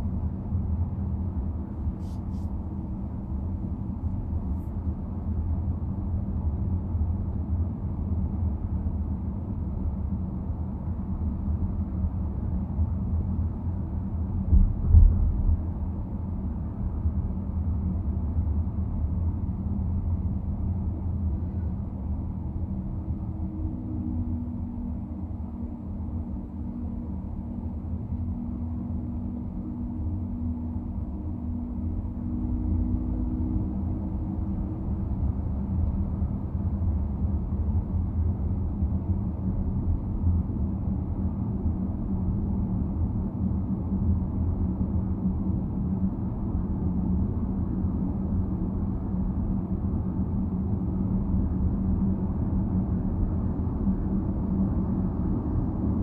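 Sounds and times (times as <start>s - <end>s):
car tyres and engine rumble: 0.0s - 56.0s.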